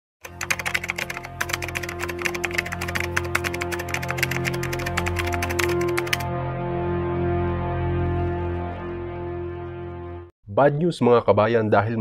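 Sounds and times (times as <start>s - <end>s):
keyboard typing clicks: 0.2s - 6.3s
droning music: 0.3s - 10.3s.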